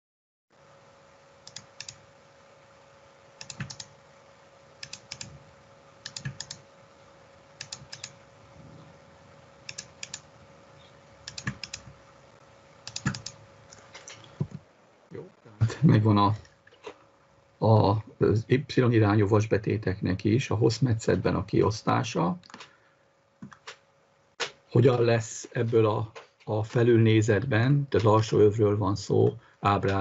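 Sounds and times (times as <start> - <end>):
faint steady hum: 0.5 - 30.0
mouse and keyboard clicking: 1.5 - 2.0, 3.4 - 3.9, 4.8 - 5.4, 6.1 - 6.6, 7.6 - 8.2, 9.7 - 10.2, 11.3 - 11.9, 12.9 - 14.3.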